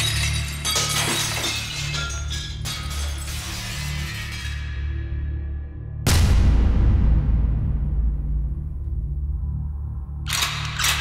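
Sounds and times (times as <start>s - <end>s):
shattering crash with ringing: 0.0s - 4.9s
dramatic film score: 2.6s - 11.0s.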